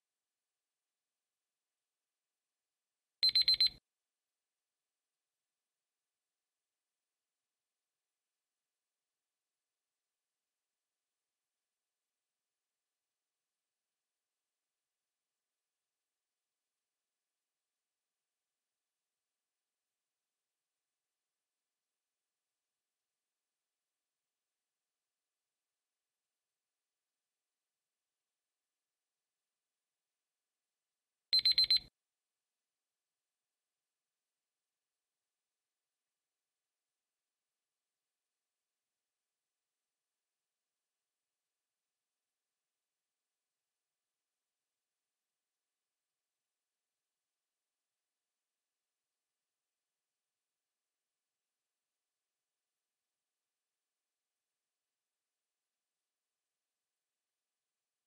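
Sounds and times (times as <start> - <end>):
timer alarm beeps: 3.2 - 3.8, 31.4 - 31.9
high electronic alarm beeps: 31.4 - 31.8.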